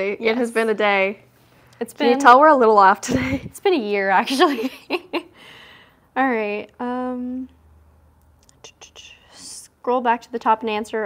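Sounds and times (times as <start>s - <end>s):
woman reading aloud: 2.0s - 2.7s
soft whispering: 8.6s - 9.7s.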